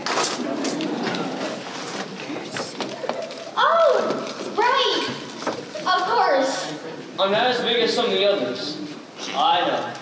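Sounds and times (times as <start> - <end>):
young person delivering lines: 2.6 - 6.8.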